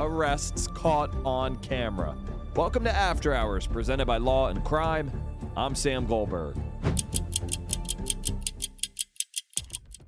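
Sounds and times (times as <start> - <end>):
fast clock ticking: 7.0 - 10.0.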